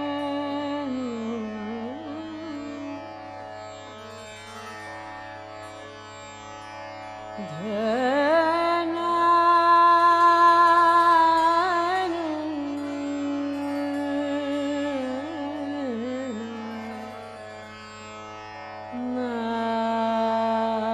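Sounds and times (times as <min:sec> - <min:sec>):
woman singing classical vocals: 0:00.0 - 0:03.0, 0:07.4 - 0:17.2, 0:18.9 - 0:20.9.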